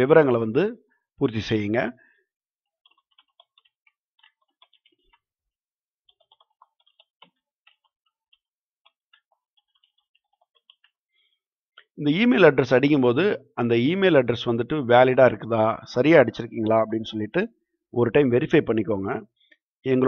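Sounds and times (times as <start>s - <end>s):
faint keyboard typing: 2.6s - 5.4s, 6.0s - 12.0s.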